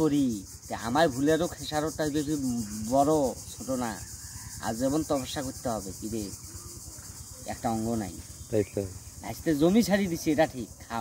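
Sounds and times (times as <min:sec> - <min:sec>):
high-pitched insect chorus: 0:00.0 - 0:11.0
man talking: 0:07.5 - 0:11.0.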